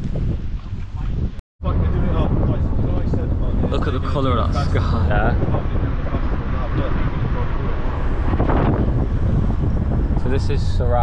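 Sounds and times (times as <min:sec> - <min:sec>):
vehicle road noise: 0:00.0 - 0:11.0
wind over microphone: 0:00.0 - 0:11.0.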